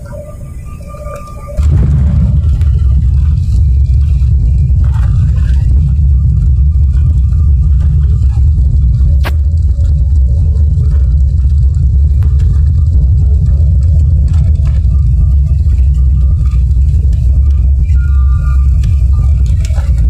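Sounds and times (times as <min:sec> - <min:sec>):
jet cabin low rumble: 0:00.0 - 0:20.0.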